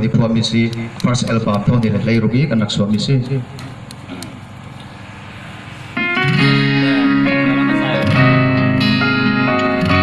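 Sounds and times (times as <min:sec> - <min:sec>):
open-air gathering background noise: 0:00.0 - 0:10.0.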